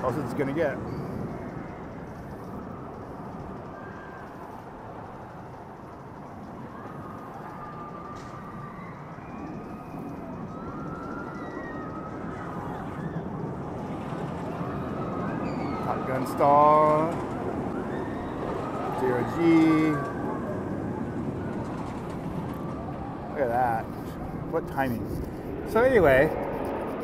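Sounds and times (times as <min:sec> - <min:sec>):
roller coaster rumble: 0:00.0 - 0:27.0.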